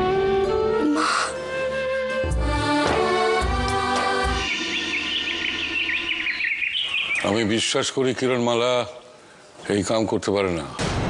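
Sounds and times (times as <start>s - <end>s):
background music: 0.0s - 6.6s
birds chirping: 4.0s - 10.0s.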